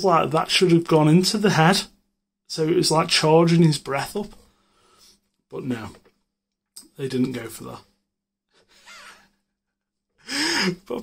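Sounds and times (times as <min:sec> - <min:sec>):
man speaking: 0:00.0 - 0:04.4, 0:05.5 - 0:06.1, 0:06.8 - 0:07.9, 0:10.7 - 0:11.0
faint breath: 0:04.4 - 0:05.3.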